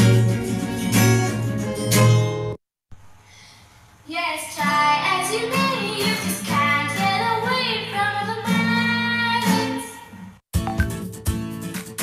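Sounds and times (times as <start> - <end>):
acoustic guitar: 0.0 - 2.6, 4.6 - 12.0
child singing: 4.1 - 10.0.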